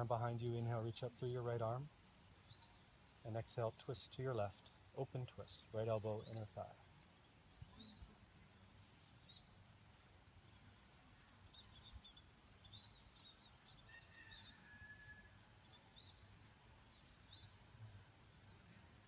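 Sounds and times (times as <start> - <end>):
faint bird chirps: 2.1 - 19.0.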